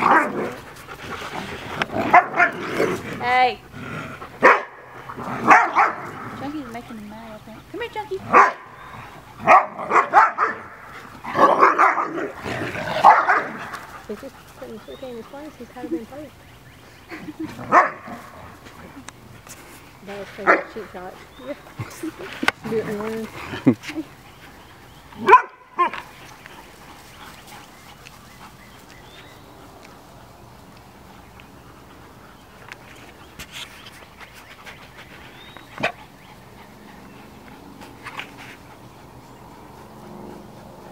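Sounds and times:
dogs barking: 0:00.0 - 0:00.7, 0:02.0 - 0:02.8, 0:04.3 - 0:06.5, 0:08.2 - 0:14.1, 0:17.6 - 0:18.6, 0:20.4 - 0:21.0, 0:25.2 - 0:26.1
dogs growling: 0:00.0 - 0:19.5, 0:20.1 - 0:29.7, 0:34.8 - 0:40.9
dog barking: 0:04.4 - 0:04.8, 0:05.4 - 0:06.1, 0:08.3 - 0:08.7, 0:09.4 - 0:10.7, 0:11.4 - 0:12.3, 0:13.0 - 0:13.6, 0:17.7 - 0:18.1, 0:25.2 - 0:26.0.

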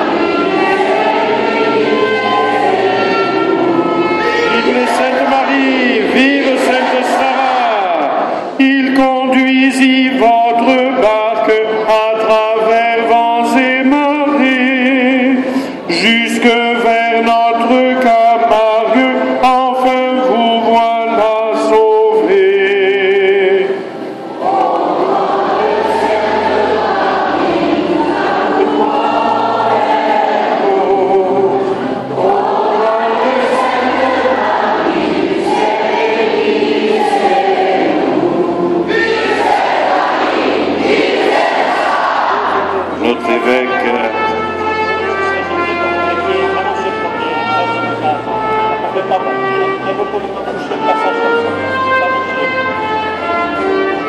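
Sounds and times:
congregation singing a hymn: 0:00.0 - 0:54.0
single voice singing: 0:00.0 - 0:54.0.

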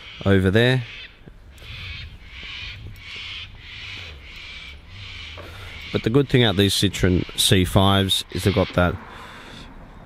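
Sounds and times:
bird harsh calls: 0:00.0 - 0:09.7.

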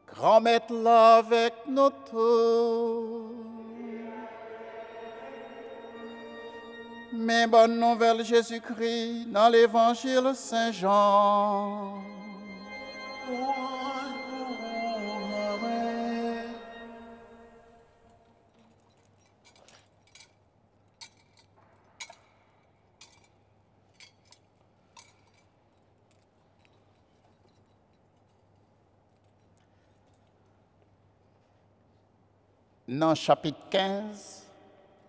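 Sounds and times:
liturgical chanting: 0:00.0 - 0:18.1
singing held note: 0:03.1 - 0:08.4, 0:11.2 - 0:17.9
faint pitched drone: 0:03.5 - 0:07.3, 0:11.6 - 0:17.8
thurible chains clinking: 0:18.0 - 0:31.0.

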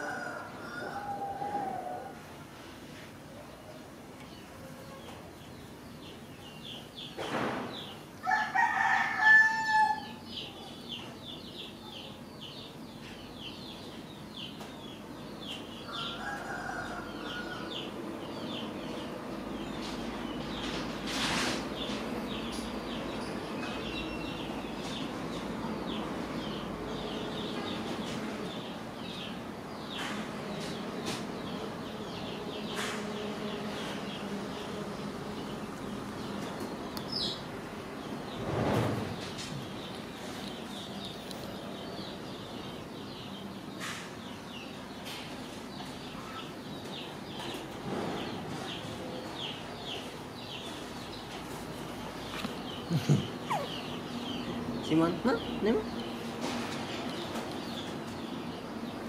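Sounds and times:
rooster crowing: 0:00.0 - 0:02.2, 0:08.2 - 0:10.2, 0:15.9 - 0:17.9.

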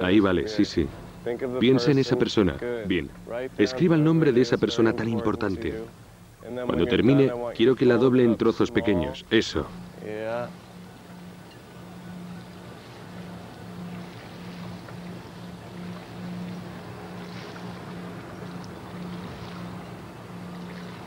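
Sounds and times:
low mechanical hum: 0:00.0 - 0:21.0
outdoor background noise: 0:00.0 - 0:21.0.

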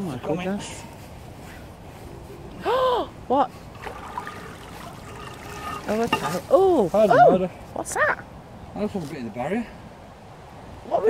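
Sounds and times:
water pouring and splashing: 0:03.7 - 0:06.6.

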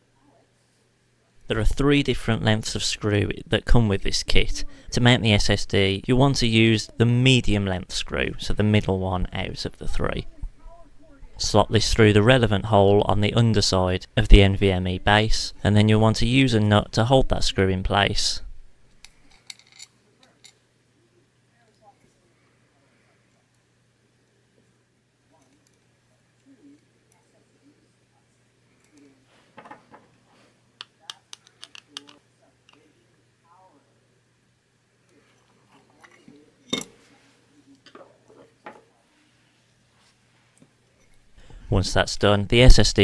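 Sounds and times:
faint low hum: 0:00.0 - 0:43.0
soft handling sounds: 0:24.3 - 0:33.0, 0:35.0 - 0:41.6
screwdriver clicks and taps: 0:30.8 - 0:32.8.

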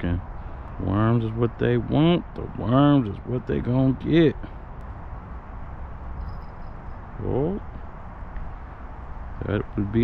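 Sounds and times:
low outdoor rumble: 0:00.0 - 0:10.0
faint thin high tone: 0:06.2 - 0:07.0.

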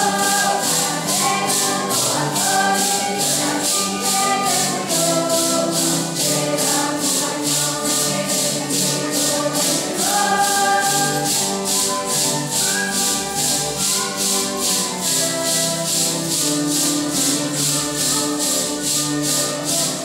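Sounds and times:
group singing a hymn: 0:00.0 - 0:20.0
maracas shaken: 0:00.0 - 0:20.0.

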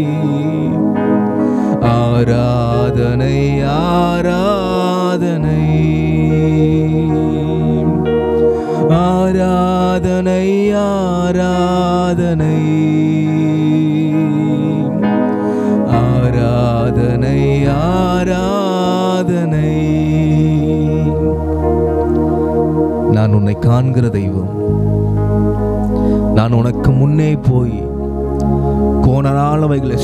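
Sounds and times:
man singing slow worship song: 0:00.0 - 0:22.2, 0:23.0 - 0:24.8, 0:25.9 - 0:30.0
sustained keyboard chords: 0:00.0 - 0:30.0.

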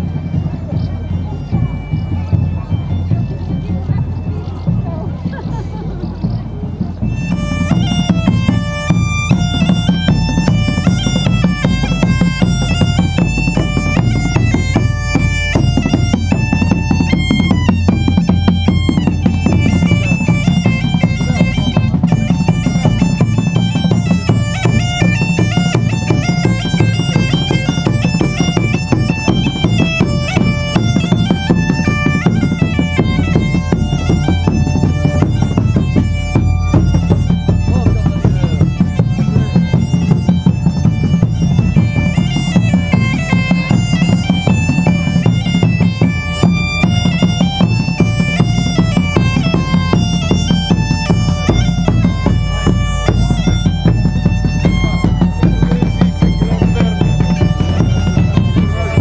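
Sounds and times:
bagpipe melody with drone: 0:00.0 - 0:59.0
large drum beating: 0:00.0 - 0:59.0.

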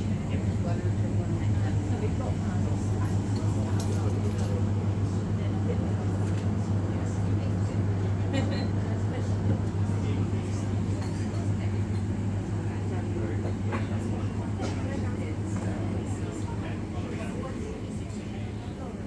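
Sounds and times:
indistinct chatter of customers: 0:00.0 - 0:19.0
steady low hum: 0:00.0 - 0:19.0.

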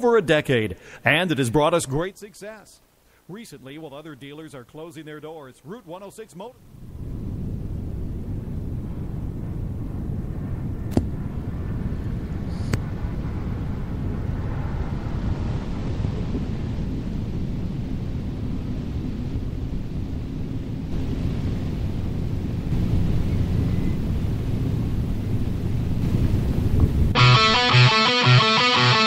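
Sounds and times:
steady low rumbling noise: 0:06.5 - 0:29.0.

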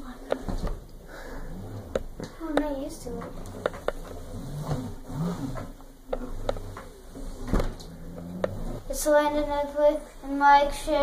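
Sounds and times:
hoverboard motors whirring: 0:01.4 - 0:02.3, 0:03.1 - 0:08.9.

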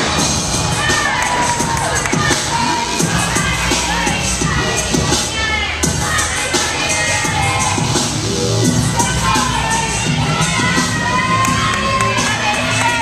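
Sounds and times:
spectators cheering and shouting: 0:00.0 - 0:13.0
clapping: 0:11.4 - 0:13.0.

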